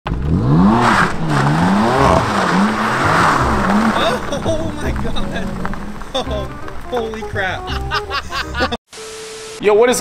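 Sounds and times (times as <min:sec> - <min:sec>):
car engine revving: 0:00.1 - 0:07.1
tires squealing on pavement: 0:00.2 - 0:07.8.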